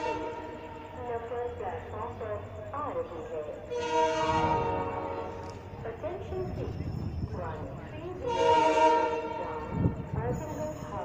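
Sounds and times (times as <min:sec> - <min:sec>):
locomotive horn blast: 0:00.0 - 0:00.9, 0:03.7 - 0:05.6, 0:08.2 - 0:10.1.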